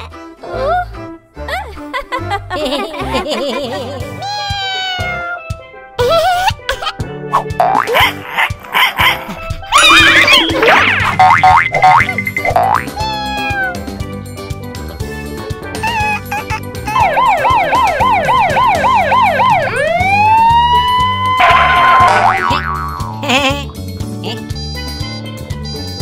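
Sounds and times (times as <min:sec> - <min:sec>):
background music: 0:00.0 - 0:26.0
fire engine siren: 0:17.0 - 0:22.1.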